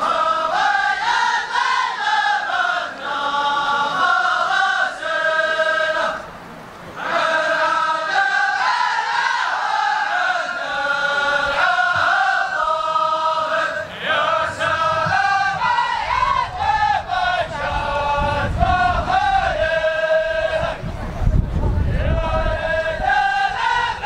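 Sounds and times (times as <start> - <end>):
men chanting in unison: 0.0 - 6.3, 6.9 - 21.0, 21.9 - 24.0.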